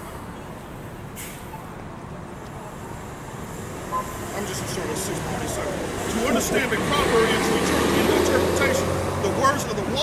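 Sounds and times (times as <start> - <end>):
city street traffic: 0.0 - 10.0
air brakes hissing: 1.2 - 1.6.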